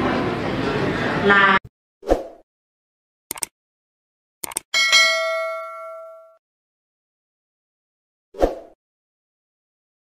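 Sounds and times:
mouse click: 3.3 - 3.5
notification bell ding: 4.8 - 6.4.

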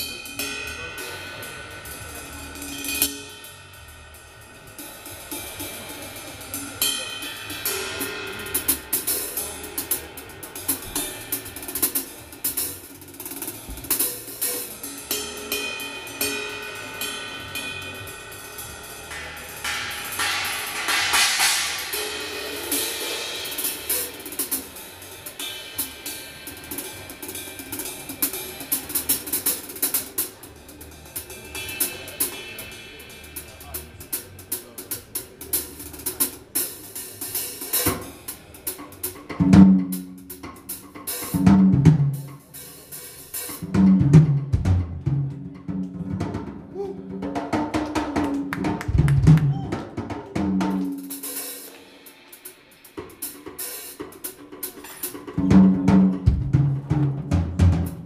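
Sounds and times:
cymbal crash: 0.0 - 34.4
cymbal and hi-hat playing: 0.0 - 45.6, 46.8 - 58.0
snare drum hits: 19.1 - 22.2
loud tom drum strikes: 19.1 - 24.8, 43.6 - 46.5.

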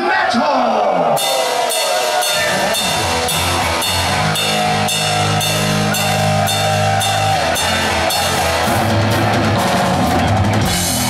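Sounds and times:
drum and cymbal hits: 1.2 - 11.0
heavy metal band playing: 1.2 - 11.0.

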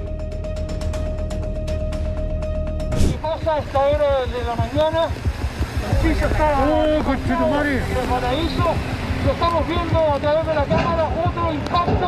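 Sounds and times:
background music with steady beat: 0.0 - 12.0
road rumble: 0.0 - 12.0
wind on microphone: 2.9 - 12.0.

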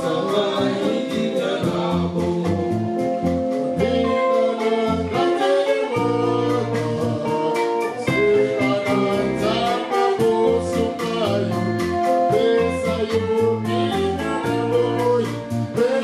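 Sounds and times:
drum kit: 0.0 - 16.0
electric guitar: 0.0 - 16.0
men singing: 0.0 - 16.0.

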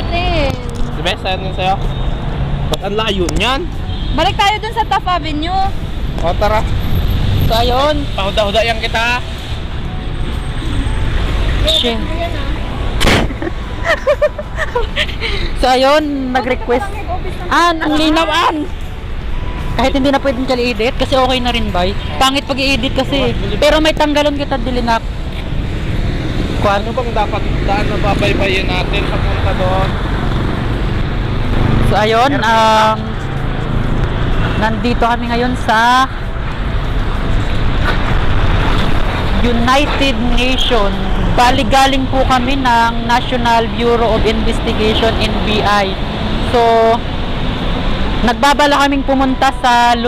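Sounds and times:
street traffic rumble: 0.0 - 50.0
person laughing: 13.2 - 15.6.

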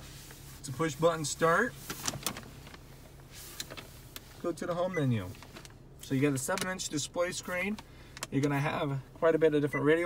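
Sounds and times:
low cabin hum: 0.0 - 10.0.

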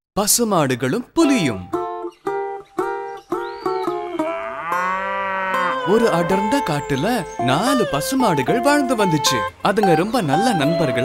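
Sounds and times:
cow mooing: 4.1 - 6.4.

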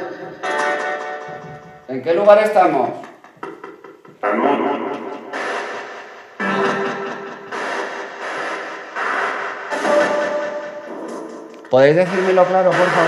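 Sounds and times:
static hissing: 4.8 - 13.0.

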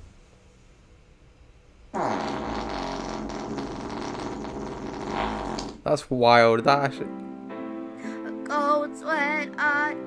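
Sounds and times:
long human fart: 1.9 - 5.8.

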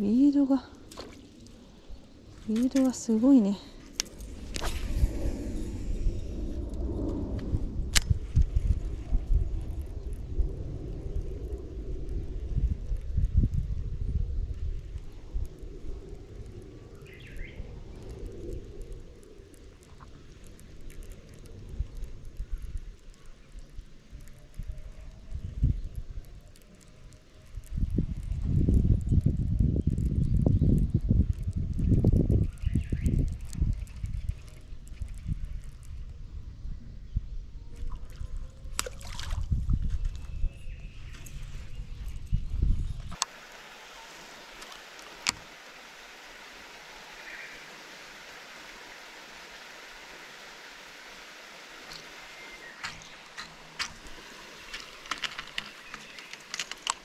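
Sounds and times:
heavy irregular low rumble: 0.0 - 37.7
steady quiet hiss: 0.0 - 57.0
light clicks: 52.8 - 57.0.

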